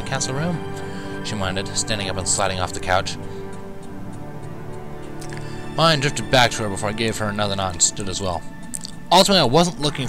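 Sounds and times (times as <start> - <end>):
faint evenly spaced ticks: 0.0 - 10.0
soft sustained music tones: 0.0 - 10.0.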